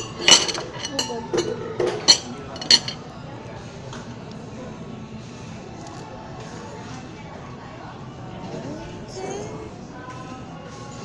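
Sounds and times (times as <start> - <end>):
cutlery clinking on plate: 0.0 - 3.0
restaurant background noise: 0.0 - 11.0.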